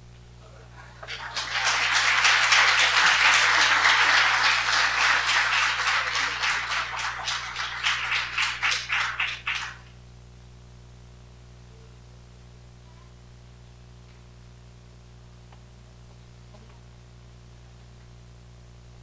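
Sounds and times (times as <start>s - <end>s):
audience applauding: 0.8s - 9.9s.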